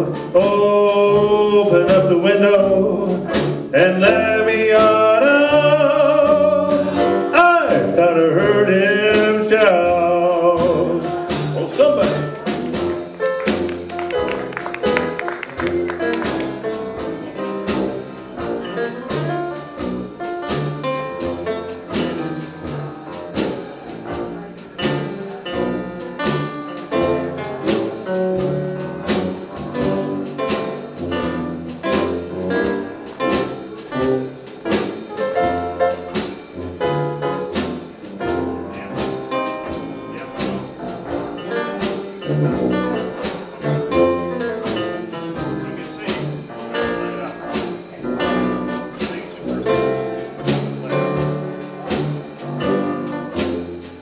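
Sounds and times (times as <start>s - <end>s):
drum kit: 0.0s - 54.0s
jazz band playing slow blues: 0.0s - 54.0s
piano: 0.0s - 54.0s
tuba bass: 0.0s - 54.0s.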